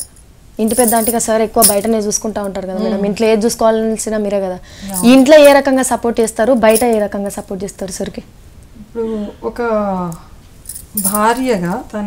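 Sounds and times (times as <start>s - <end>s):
light metallic jingle: 0.0s - 2.0s, 10.6s - 11.7s
woman speaking: 0.6s - 8.3s, 11.0s - 12.0s.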